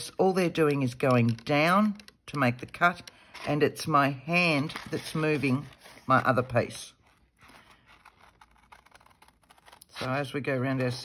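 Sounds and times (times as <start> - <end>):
scissors cutting paper: 7.2 - 11.0.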